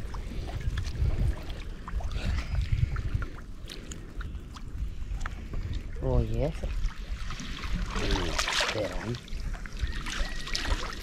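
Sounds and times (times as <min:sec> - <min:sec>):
lake water lapping and splashing: 0:00.0 - 0:11.0
wind rumble on microphone: 0:00.0 - 0:11.0.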